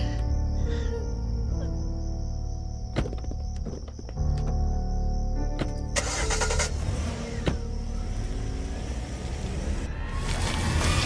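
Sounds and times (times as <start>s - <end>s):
car engine starting and rumbling: 2.6s - 11.0s.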